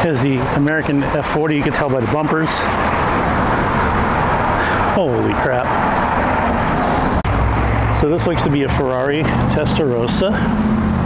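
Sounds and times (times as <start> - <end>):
street traffic rushing: 0.0 - 11.0.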